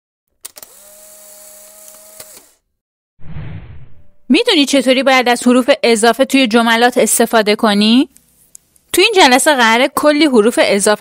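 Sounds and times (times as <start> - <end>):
burst of rushing noise: 3.2 - 4.3.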